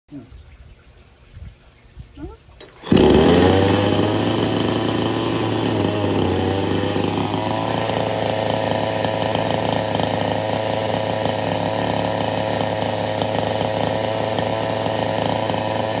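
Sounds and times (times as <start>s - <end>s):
chainsaw engine running: 2.7s - 16.0s.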